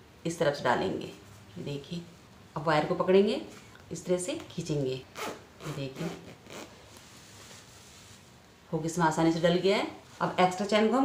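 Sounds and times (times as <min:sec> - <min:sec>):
zipper rasp: 0:05.2 - 0:06.9.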